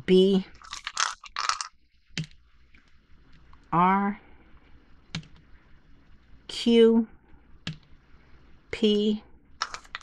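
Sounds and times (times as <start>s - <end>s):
small hard objects rattling: 0.6s - 1.8s, 9.6s - 10.0s.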